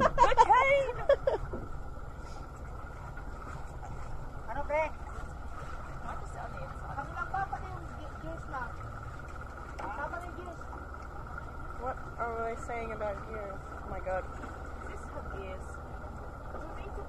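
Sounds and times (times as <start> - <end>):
boat engine rumbling: 0.0 - 17.0.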